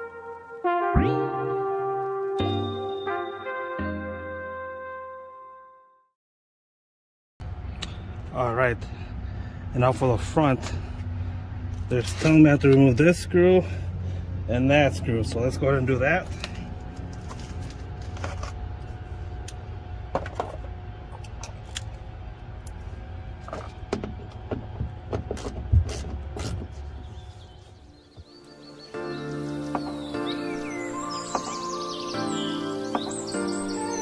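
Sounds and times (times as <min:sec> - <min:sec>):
background music: 0:00.0 - 0:05.8, 0:28.0 - 0:34.0
low steady rumble: 0:07.4 - 0:27.9.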